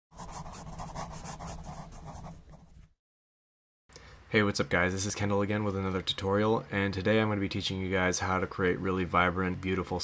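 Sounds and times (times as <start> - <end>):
pen scratching on paper: 0.1 - 2.7.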